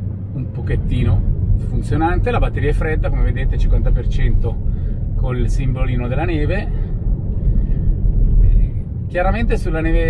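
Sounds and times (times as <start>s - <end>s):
tyre and road rumble in car: 0.0s - 10.0s.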